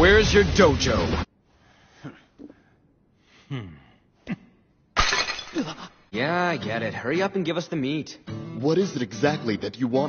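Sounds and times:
tiles smashing: 0:05.0 - 0:05.9.

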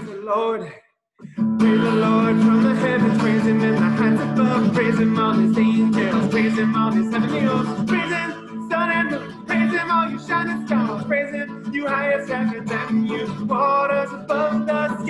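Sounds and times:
man singing: 0:00.0 - 0:00.8, 0:01.4 - 0:15.0
acoustic guitar strumming: 0:01.2 - 0:15.0.

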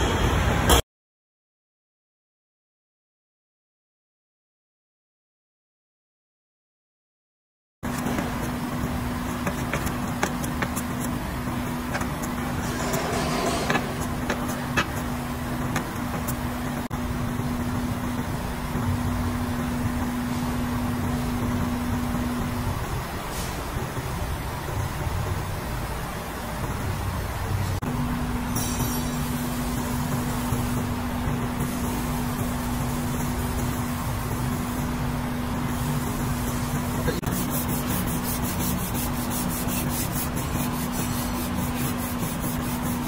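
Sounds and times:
mechanical hum: 0:07.8 - 0:43.0.

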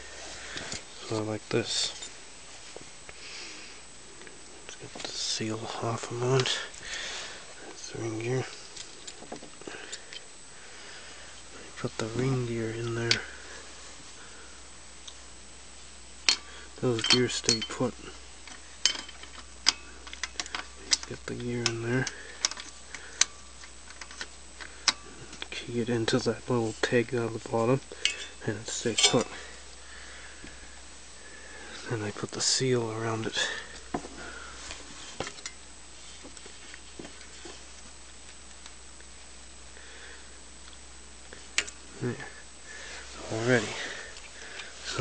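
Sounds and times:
low steady hum: 0:00.0 - 0:45.0.

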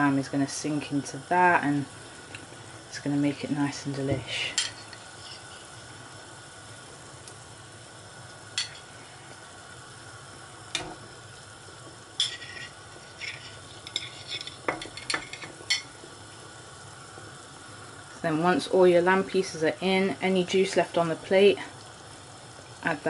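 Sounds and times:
stock simmering in a pan: 0:00.0 - 0:23.0.

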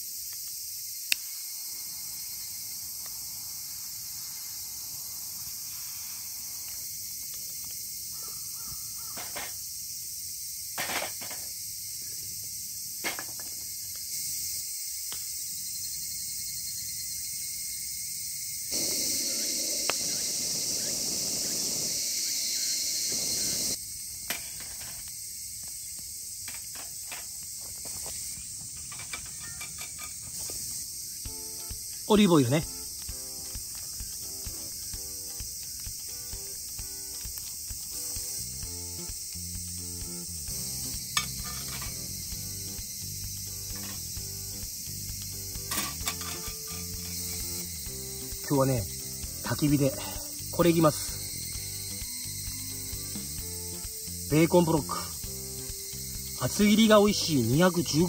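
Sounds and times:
insects chorus: 0:00.0 - 0:58.0.

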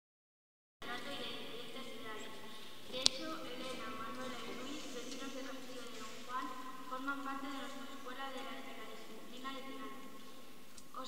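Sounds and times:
murmur of voices echoing: 0:00.8 - 0:11.0.

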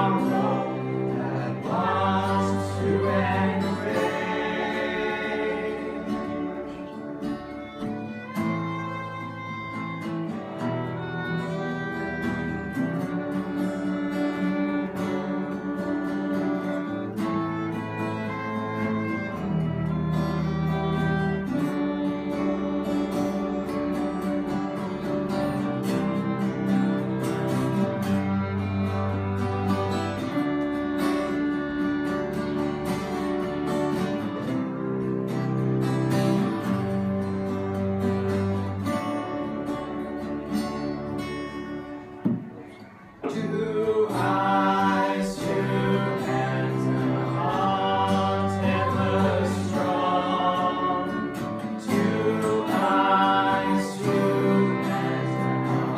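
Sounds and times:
acoustic guitars strumming: 0:00.0 - 0:55.9
cello: 0:00.0 - 0:55.9
violin: 0:00.0 - 0:55.9.

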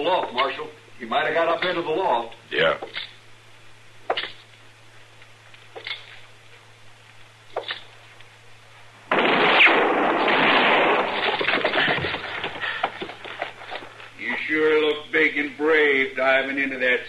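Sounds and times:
loud gunshot-like blast: 0:09.1 - 0:11.2.

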